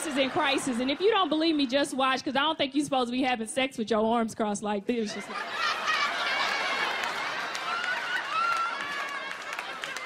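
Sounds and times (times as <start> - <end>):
audience laughing: 0.0 - 2.2, 5.1 - 8.2
scattered claps: 6.8 - 10.0.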